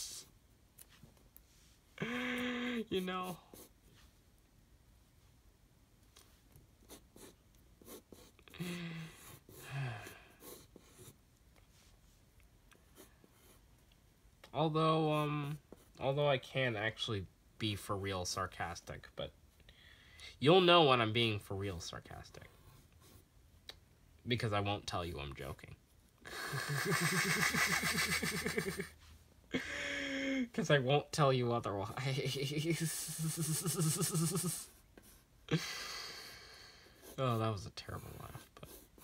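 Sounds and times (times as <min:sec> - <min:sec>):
pencil scratching on paper: 0:03.0 - 0:04.1, 0:06.8 - 0:08.4, 0:10.4 - 0:11.2, 0:37.0 - 0:39.0
person laughing wheezily: 0:26.3 - 0:30.5, 0:32.4 - 0:34.7, 0:35.5 - 0:36.3.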